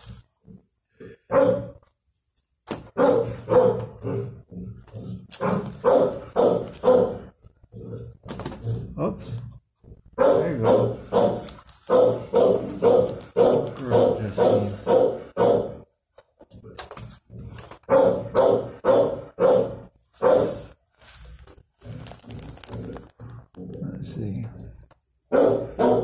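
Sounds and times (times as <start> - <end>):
dog barking: 1.3 - 1.8, 2.9 - 4.4, 5.4 - 7.3, 10.1 - 15.8, 17.9 - 20.8, 25.3 - 26.0.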